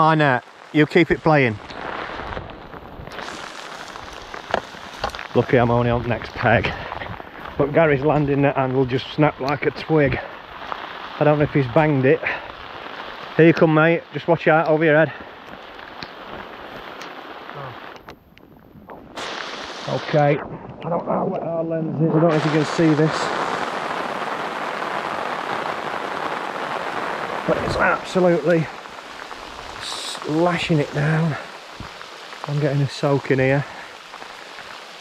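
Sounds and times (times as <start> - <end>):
heavy rain hissing: 0.0 - 18.1, 18.9 - 35.0.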